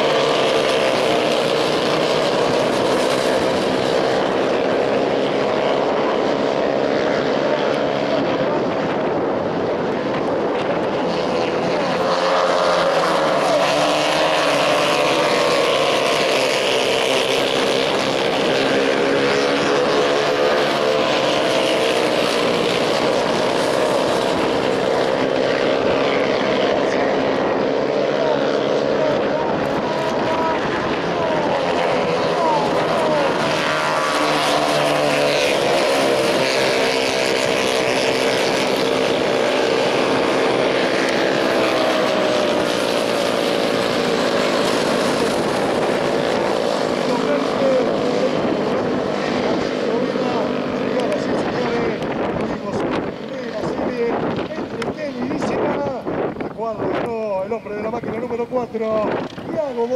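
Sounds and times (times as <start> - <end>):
small race car engines buzzing: 0.0 - 56.5.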